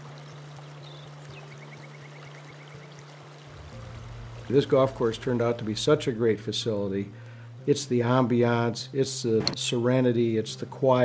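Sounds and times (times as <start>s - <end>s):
water rushing over rocks: 2.8s - 6.2s
steady low hum: 3.4s - 8.6s.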